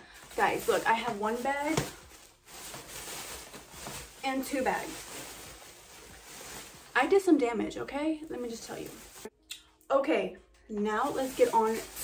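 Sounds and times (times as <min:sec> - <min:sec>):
plastic bag rustling: 0:00.0 - 0:09.3, 0:11.0 - 0:12.0.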